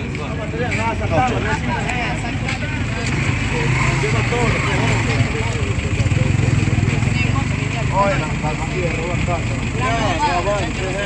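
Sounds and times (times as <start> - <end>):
people talking indistinctly: 0.0 - 11.0
vehicle engine idling: 0.0 - 11.0.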